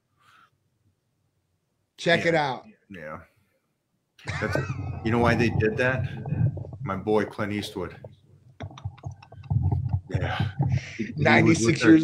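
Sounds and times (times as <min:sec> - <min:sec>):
man's deep laughter: 0:04.2 - 0:05.0.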